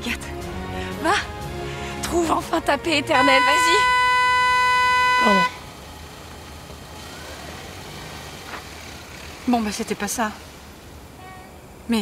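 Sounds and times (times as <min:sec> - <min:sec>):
car engine idling: 0:01.8 - 0:12.0.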